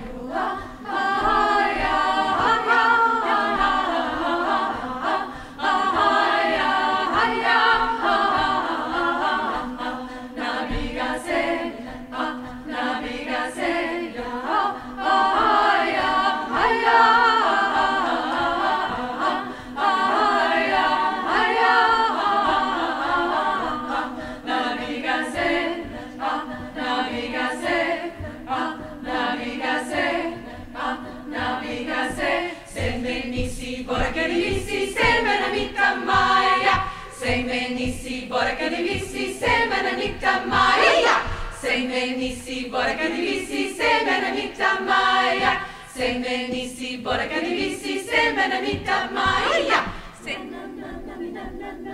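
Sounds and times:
women's choir singing a cappella: 0.0s - 51.9s.

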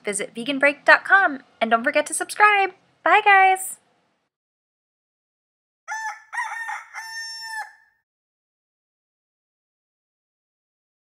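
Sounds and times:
rooster crowing: 5.9s - 8.0s.

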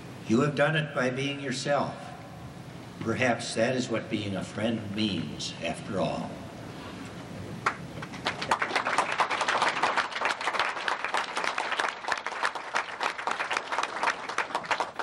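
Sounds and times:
audience applauding: 7.6s - 15.0s.

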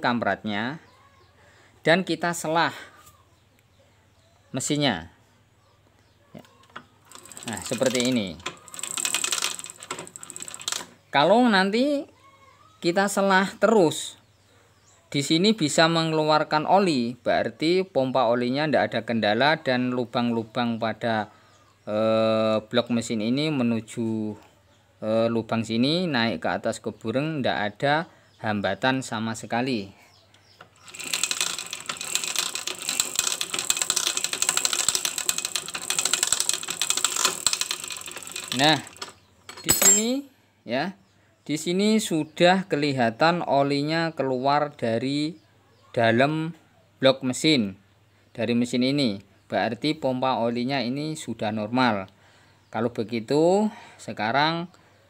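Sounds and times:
kick-start ratchet clicking: 7.1s - 10.9s, 30.7s - 39.6s.

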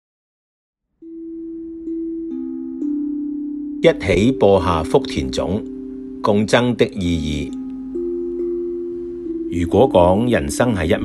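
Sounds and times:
soft sustained low tones: 1.0s - 11.0s.

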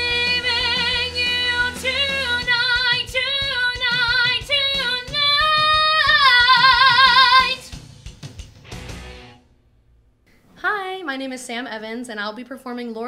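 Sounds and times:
woman singing with vibrato: 0.0s - 7.7s.

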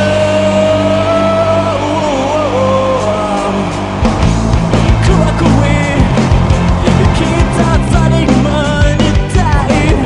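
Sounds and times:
rock band playing loudly: 0.0s - 10.0s
drum hits: 3.6s - 9.6s.

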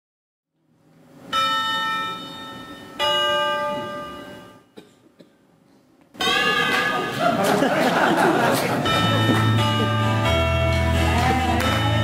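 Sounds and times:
bell strikes ringing: 1.3s - 4.8s, 8.8s - 10.8s.

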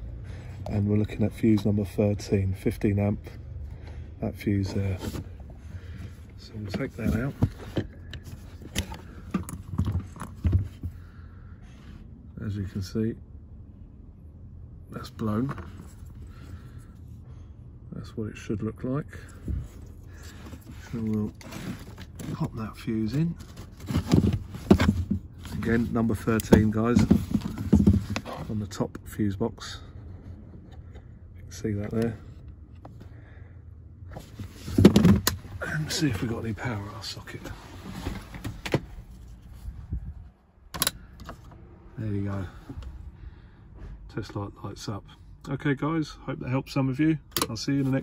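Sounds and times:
low background rumble: 0.0s - 48.0s
faint handling noises: 0.5s - 12.0s, 19.1s - 33.2s, 34.0s - 43.1s
handling clicks and knocks: 6.6s - 10.9s, 23.4s - 28.5s, 34.6s - 35.5s.

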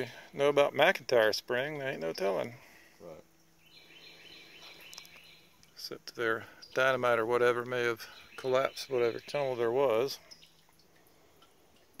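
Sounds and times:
water dripping and trickling: 0.0s - 12.0s.

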